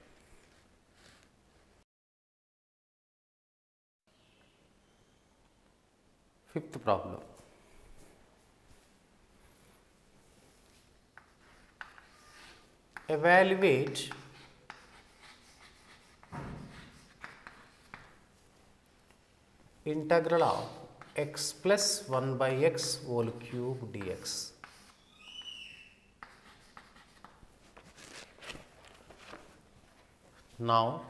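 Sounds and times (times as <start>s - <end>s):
chalk scratching on chalkboard: 10.6s - 18.3s, 20.3s - 22.1s, 22.7s - 28.2s
chalk tapping on board: 11.2s - 18.2s, 21.0s - 21.5s, 23.9s - 25.5s, 26.2s - 27.4s.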